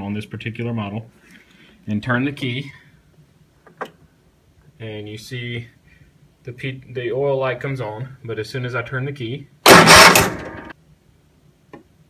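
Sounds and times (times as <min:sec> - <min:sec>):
electric starter cranking engine: 0:09.7 - 0:10.7.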